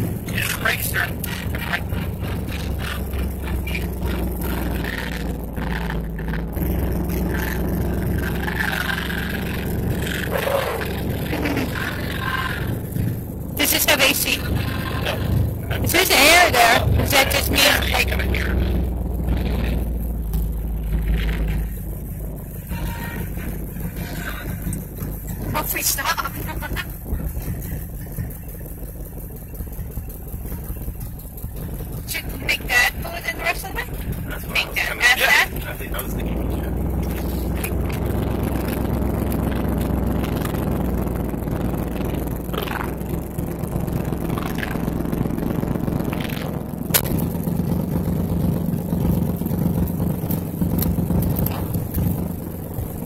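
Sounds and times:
car engine running from inside cabin: 0:00.0 - 0:53.0.

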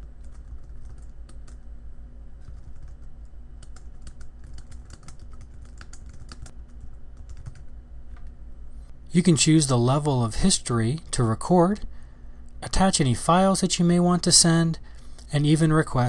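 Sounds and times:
low steady hum: 0:00.0 - 0:16.0
computer keyboard keys clicking: 0:00.2 - 0:01.6, 0:02.4 - 0:06.5, 0:07.2 - 0:08.3.

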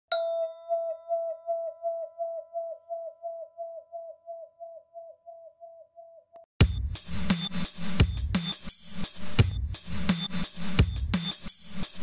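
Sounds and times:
ringing bell-like chime: 0:00.1 - 0:02.3.

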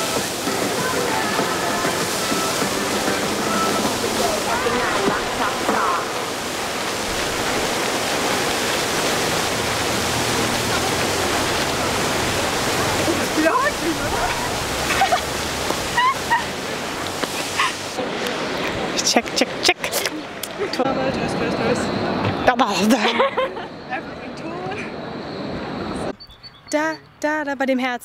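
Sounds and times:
faint voices of passers-by: 0:00.0 - 0:06.4, 0:09.8 - 0:15.2
fountain water splashing: 0:00.0 - 0:21.8.

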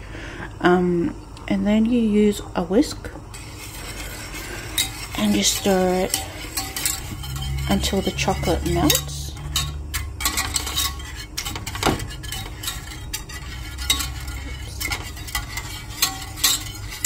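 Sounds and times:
low steady hum: 0:00.0 - 0:17.0
whisk scraping metal saucepan: 0:03.3 - 0:17.0.

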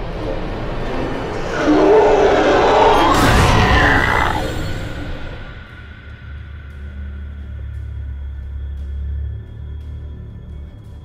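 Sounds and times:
low rumbling drone: 0:00.0 - 0:11.0
loud horror stinger: 0:00.4 - 0:06.4.

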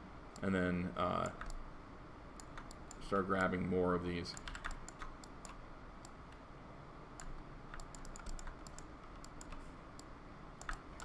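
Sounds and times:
mouse and keyboard clicking: 0:01.2 - 0:01.6, 0:02.4 - 0:03.5, 0:04.3 - 0:06.4, 0:07.2 - 0:11.0.

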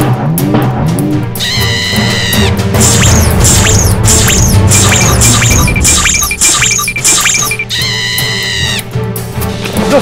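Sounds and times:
music with falling chirps: 0:00.0 - 0:10.0.

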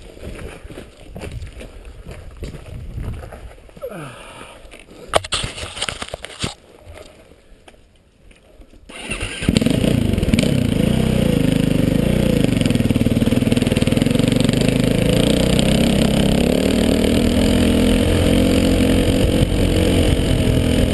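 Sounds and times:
dirt bike engine starting and running: 0:08.9 - 0:20.9.

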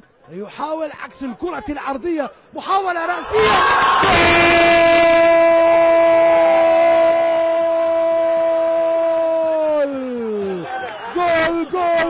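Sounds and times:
commentator's drawn-out goal shout: 0:03.2 - 0:10.3.

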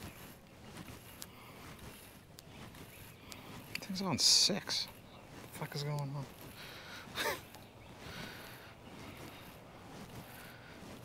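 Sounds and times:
faint sharp clicks: 0:03.3 - 0:03.9.

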